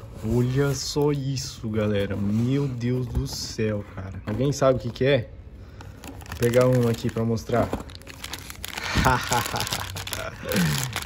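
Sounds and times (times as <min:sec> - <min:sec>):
plastic wrapping crinkling: 0:06.0 - 0:11.0.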